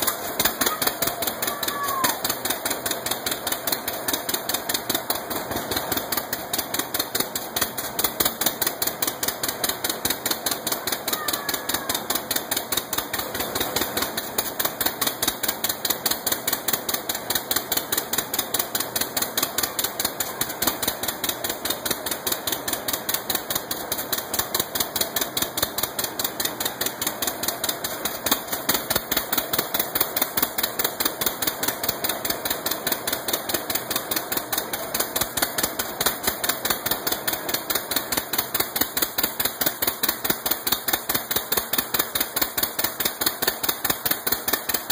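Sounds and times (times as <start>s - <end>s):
tractor engine running: 0.0s - 44.9s.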